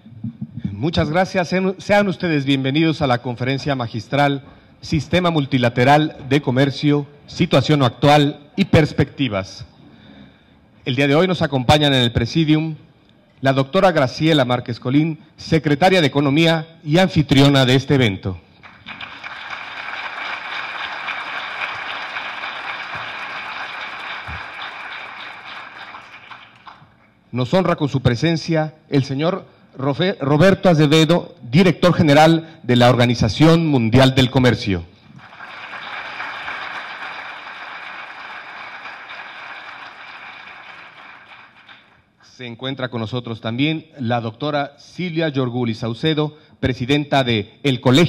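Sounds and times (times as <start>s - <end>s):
audience applauding: 18.6s - 26.9s, 35.2s - 42.0s.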